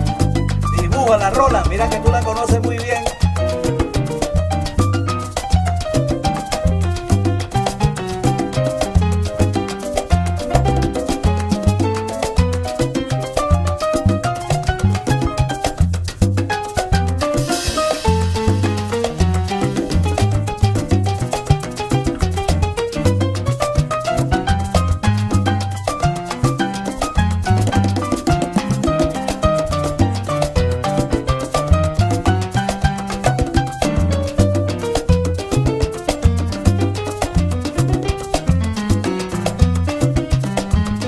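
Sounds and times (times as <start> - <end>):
melodic notes: 0.0 - 4.1
bass line: 0.0 - 41.0
conga and timbale percussion: 0.0 - 41.0
salsa band playing: 0.0 - 41.0.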